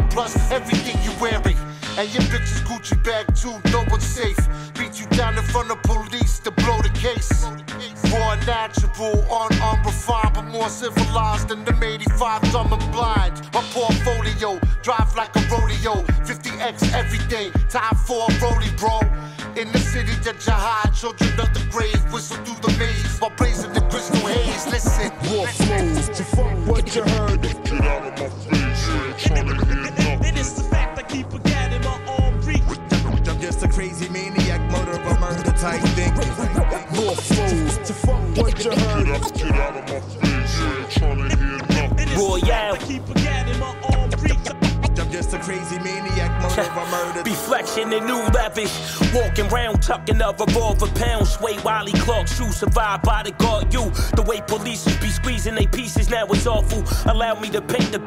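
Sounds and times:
deep bass notes: 0.0s - 46.7s, 48.3s - 58.0s
rapping over a beat: 0.0s - 58.0s
drum hits: 23.4s - 28.0s, 34.5s - 39.7s, 48.3s - 48.6s.

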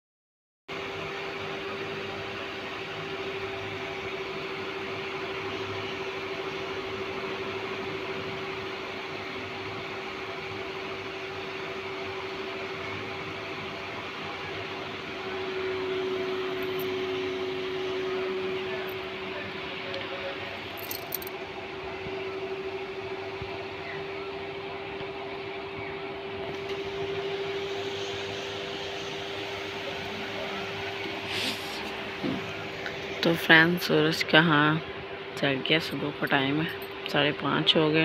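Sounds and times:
even hiss: 31.3s - 31.9s.

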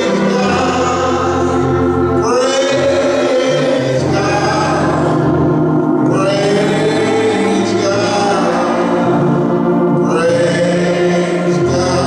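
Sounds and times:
man singing long notes: 0.0s - 12.0s
voices singing along: 0.0s - 12.0s.

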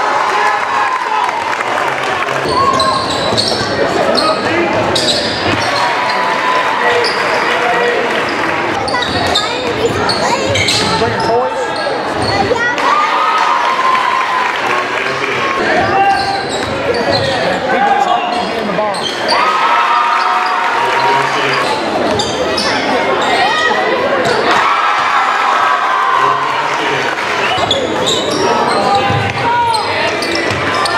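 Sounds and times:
crowd voices echoing: 0.0s - 30.9s
sneakers squeaking: 2.4s - 7.6s, 8.2s - 12.8s, 15.8s - 19.6s, 20.2s - 24.6s, 27.4s - 30.9s.

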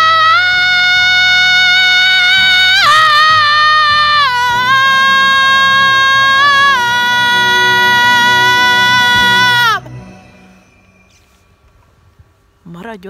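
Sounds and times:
woman belting a high note: 0.0s - 10.1s
backing track: 0.0s - 12.2s.

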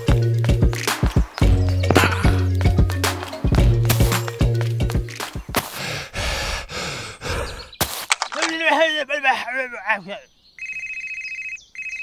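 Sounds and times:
telephone ringtone: 10.6s - 12.0s.

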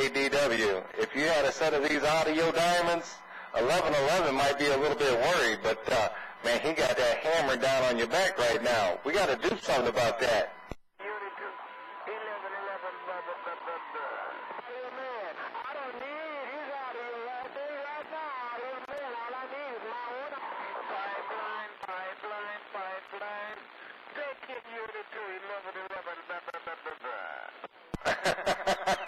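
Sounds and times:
warbling radio voice: 0.0s - 16.5s
steady radio tone: 0.0s - 29.0s.

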